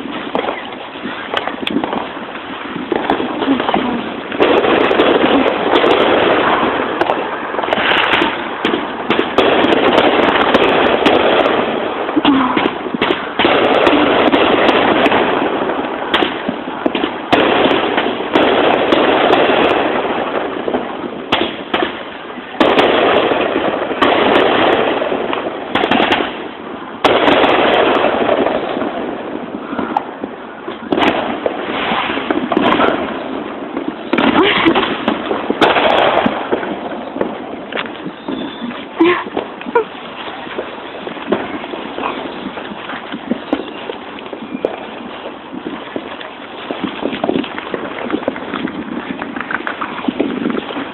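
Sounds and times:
fireworks bangs and crackling: 0:00.0 - 0:50.9.

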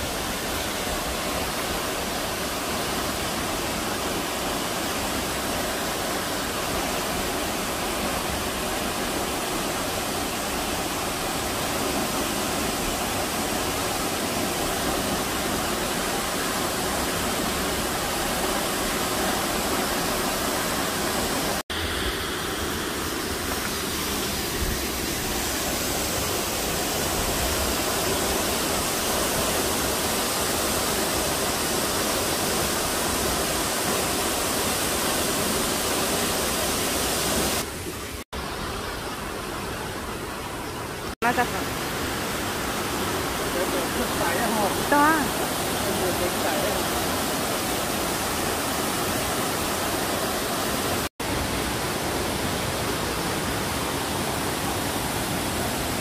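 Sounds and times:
waterfall roaring: 0:00.0 - 0:56.0.

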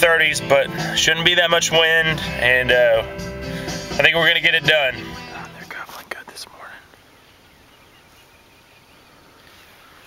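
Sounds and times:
low steady hiss: 0:04.0 - 0:10.0
man whispering: 0:05.2 - 0:07.0.

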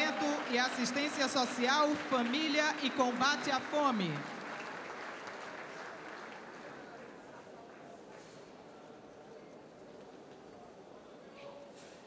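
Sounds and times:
audience applause: 0:00.0 - 0:08.1.

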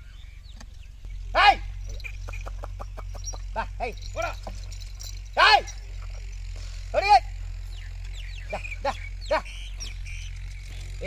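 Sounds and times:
man shouting calls: 0:01.3 - 0:06.2, 0:06.8 - 0:07.6, 0:08.3 - 0:10.0.

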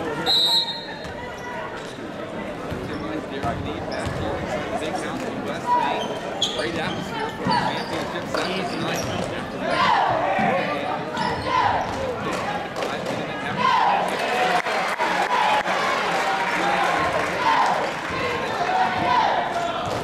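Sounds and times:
crowd voices: 0:00.0 - 0:20.0
sneakers squeaking: 0:00.2 - 0:04.5, 0:05.5 - 0:12.3.

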